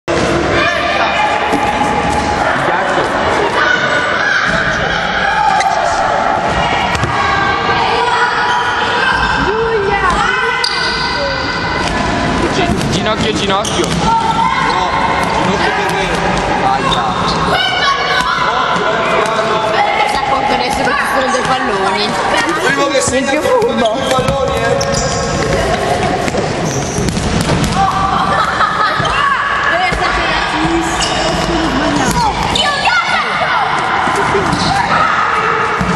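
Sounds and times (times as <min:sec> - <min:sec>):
children's voices echoing: 0:00.3 - 0:12.4, 0:14.0 - 0:23.8, 0:27.7 - 0:35.9
shoes squeaking on floor: 0:13.0 - 0:14.9, 0:20.6 - 0:27.3, 0:30.6 - 0:32.9.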